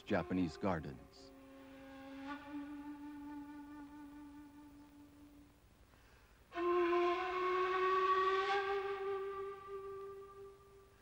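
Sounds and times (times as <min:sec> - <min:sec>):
breathy woodwind note: 0:00.0 - 0:11.0.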